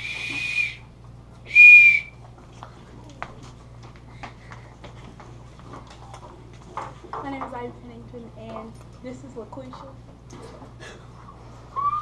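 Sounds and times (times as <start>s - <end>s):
small whistle high note: 0.0s - 0.8s, 1.5s - 2.1s, 11.7s - 12.0s.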